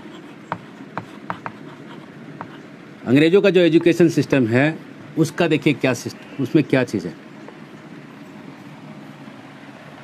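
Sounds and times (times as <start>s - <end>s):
chalk tapping on board: 0.0s - 2.6s, 3.7s - 4.0s
chalk scratching on chalkboard: 0.0s - 2.7s.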